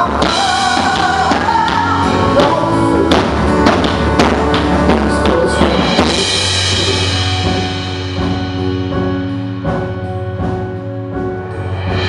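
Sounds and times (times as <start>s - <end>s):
person singing: 0.0s - 8.1s
bass guitar: 0.0s - 12.0s
drums: 0.0s - 12.0s
keyboards: 0.0s - 12.0s.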